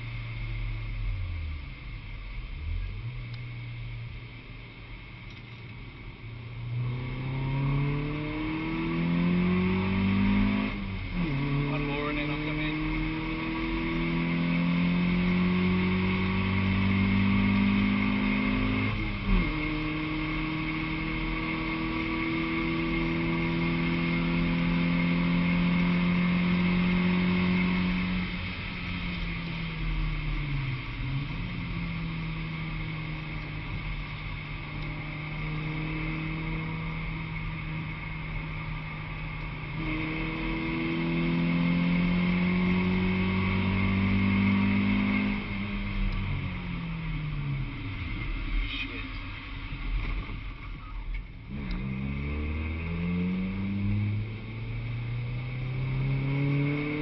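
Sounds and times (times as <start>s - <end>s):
car engine accelerating: 0.0s - 57.0s
gear change: 0.0s - 57.0s.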